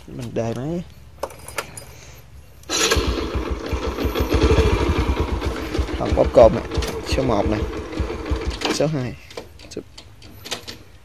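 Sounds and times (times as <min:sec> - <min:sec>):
engine starter clicks: 0:02.6 - 0:06.0, 0:06.6 - 0:08.9
motorcycle engine idling: 0:02.8 - 0:08.8.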